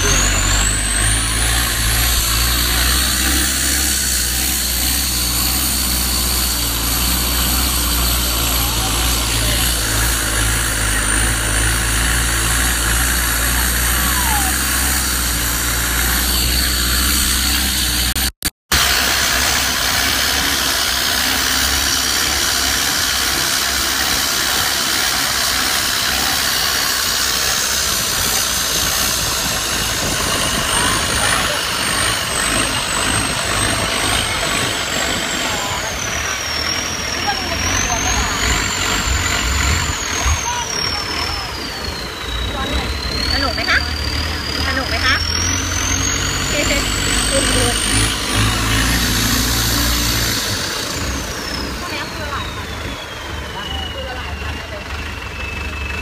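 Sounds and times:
boat engine droning: 0.0s - 56.0s
wind: 0.0s - 56.0s.

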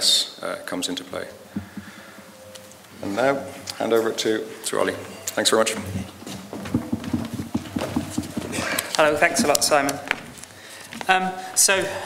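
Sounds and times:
footsteps on stage floor: 1.5s - 3.2s, 5.0s - 11.7s.

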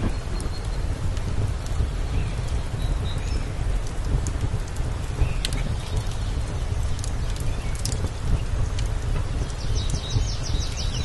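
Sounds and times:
gusting wind on microphone: 0.0s - 11.0s
faint clicks: 3.8s - 11.0s.

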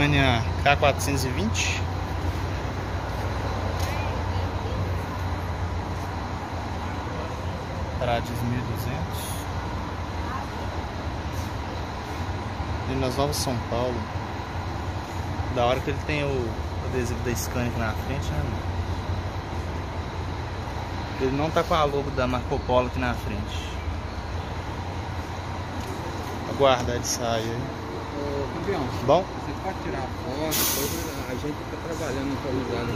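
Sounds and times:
diesel engine idling: 0.0s - 32.9s.

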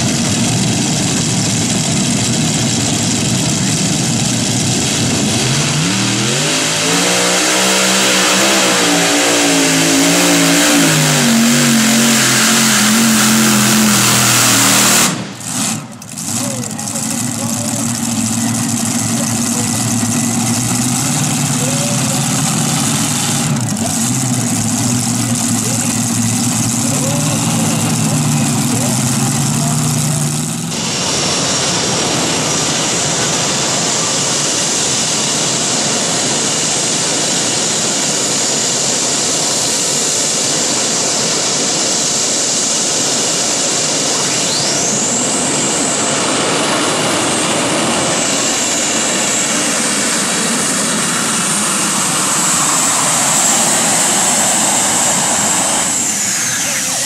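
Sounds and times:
pulling tractor engines roaring: 0.0s - 57.0s.

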